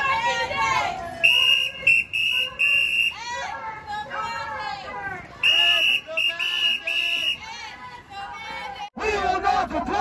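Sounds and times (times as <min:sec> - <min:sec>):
crowd shouting: 0:00.0 - 0:10.0
shrill whistle blasts: 0:01.2 - 0:03.2, 0:05.4 - 0:07.4.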